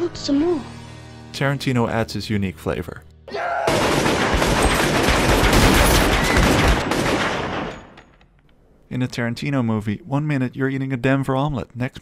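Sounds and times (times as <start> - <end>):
gunfire volley: 3.6 - 8.0.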